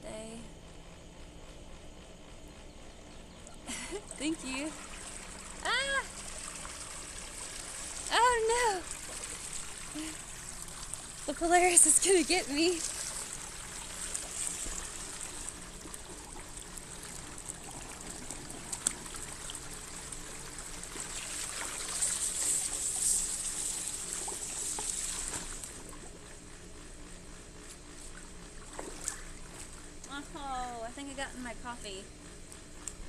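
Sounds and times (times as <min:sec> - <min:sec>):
water trickling and splashing: 0:04.4 - 0:26.2.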